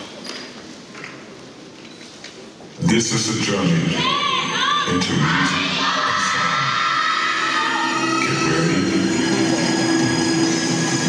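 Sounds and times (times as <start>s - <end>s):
murmur of audience voices: 0.8s - 11.0s
crowd shouting and cheering: 3.8s - 11.0s
loud routine music: 5.0s - 11.0s.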